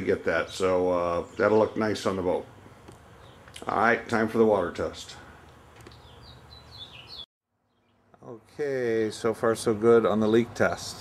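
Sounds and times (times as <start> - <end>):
faint bird chirps: 5.9 - 8.0.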